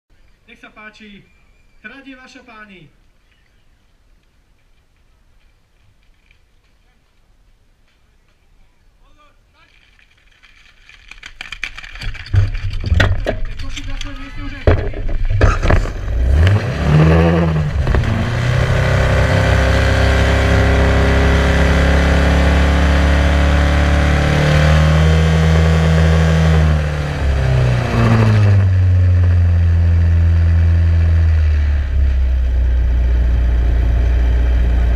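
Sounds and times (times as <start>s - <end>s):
equipment clattering: 10.0s - 16.3s.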